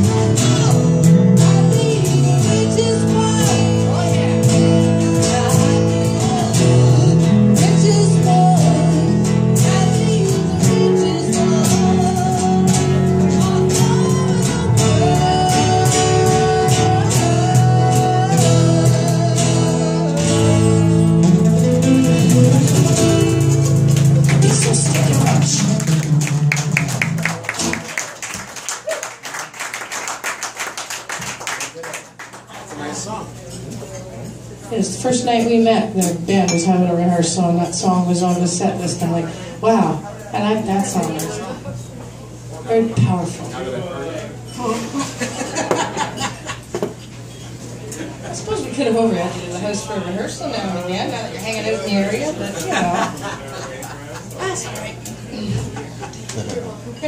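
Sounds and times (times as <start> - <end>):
strummed acoustic guitar: 0.0 - 28.0
electric guitar: 0.0 - 29.0
woman singing: 0.1 - 20.8.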